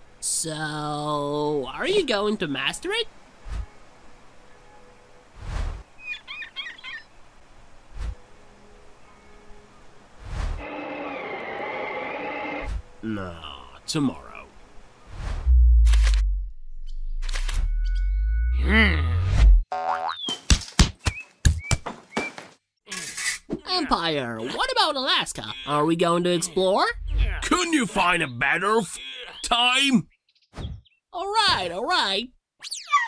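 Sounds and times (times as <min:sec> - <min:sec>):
cartoon bird chirps warbling: 0:32.6 - 0:33.0.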